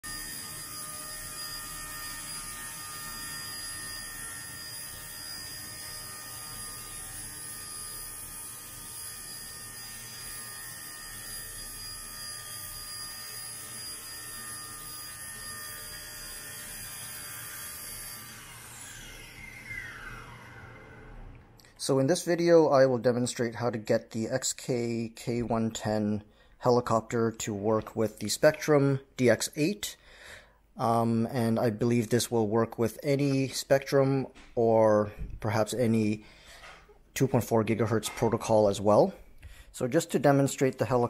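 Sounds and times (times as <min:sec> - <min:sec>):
toy helicopter motor whine: 0:00.0 - 0:21.6.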